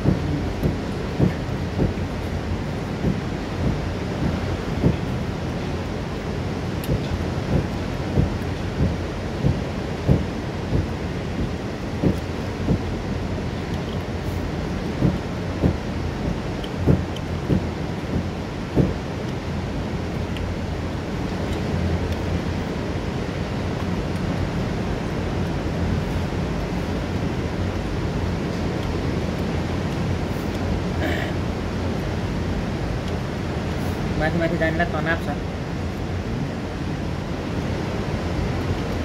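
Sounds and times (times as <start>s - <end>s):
waterfall rushing: 0.0s - 39.0s
white-water river: 0.0s - 39.0s.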